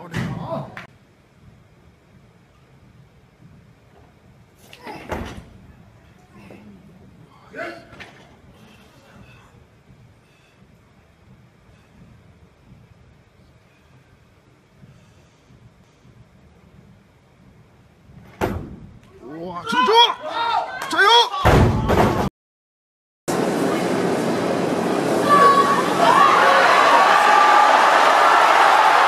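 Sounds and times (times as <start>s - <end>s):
people shouting: 19.6s - 21.9s, 25.1s - 29.0s
arena crowd noise: 23.3s - 29.0s.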